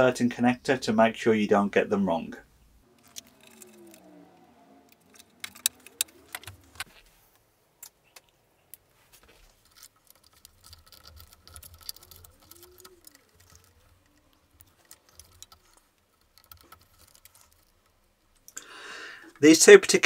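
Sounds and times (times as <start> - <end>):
cables and plastic connectors rattling: 2.9 - 19.7.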